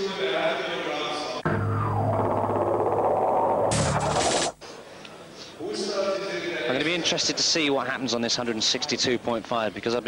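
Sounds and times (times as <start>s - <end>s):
dense musical sound: 1.4s - 4.6s.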